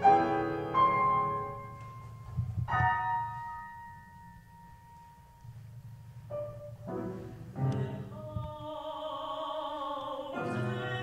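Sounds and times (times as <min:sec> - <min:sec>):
piano chord ringing: 0:00.0 - 0:07.8
low room rumble: 0:00.0 - 0:11.0.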